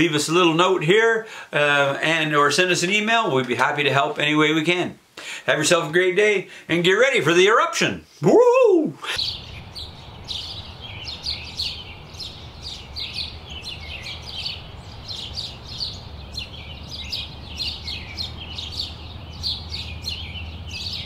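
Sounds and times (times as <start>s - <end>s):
finches chirping and twittering: 9.2s - 21.0s.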